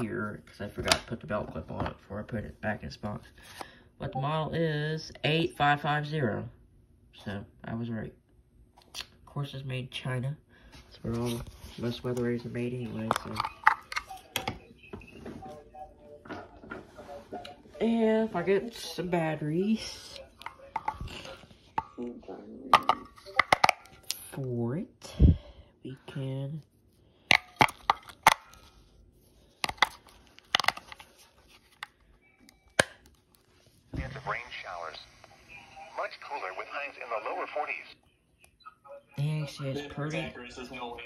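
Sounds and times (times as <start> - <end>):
voice from small radio speaker: 34.0 - 41.0.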